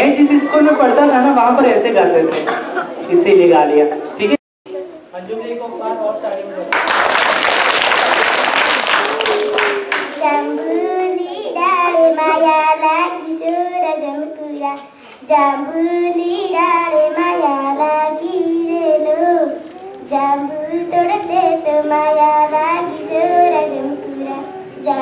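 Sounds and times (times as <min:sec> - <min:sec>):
people clapping: 0:06.6 - 0:10.4
girl singing unaccompanied: 0:10.0 - 0:25.0.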